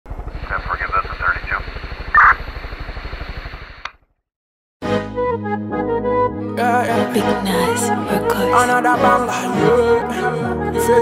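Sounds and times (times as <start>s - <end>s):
helicopter rotor beating: 0.1s - 4.2s
voice over radio: 0.3s - 2.4s.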